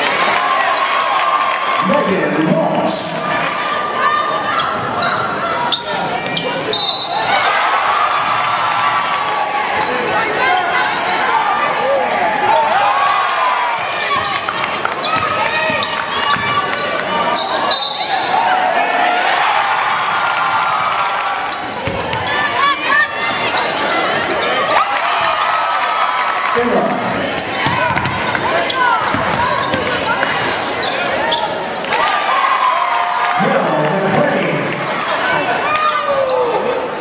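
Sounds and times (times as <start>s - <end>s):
basketball bouncing on hardwood: 27.6s - 28.4s, 29.1s - 29.9s.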